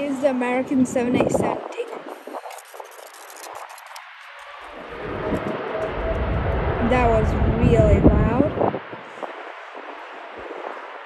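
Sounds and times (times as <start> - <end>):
jet engines spooling up: 0.7 - 11.0.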